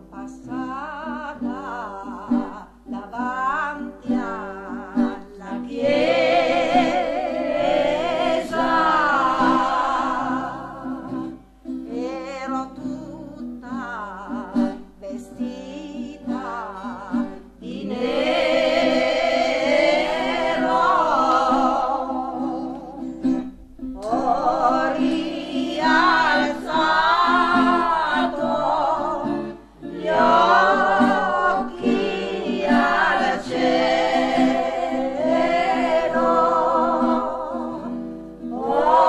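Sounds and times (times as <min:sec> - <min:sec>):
choir singing long held notes: 0:05.4 - 0:11.4, 0:17.6 - 0:23.1, 0:24.0 - 0:39.0.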